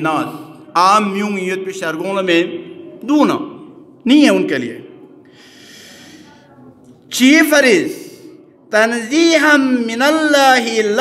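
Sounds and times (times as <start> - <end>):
man breathing in: 5.2 - 6.4.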